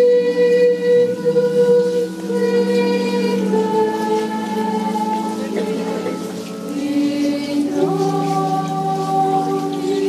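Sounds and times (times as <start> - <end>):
crowd singing a slow hymn: 0.0 - 10.0.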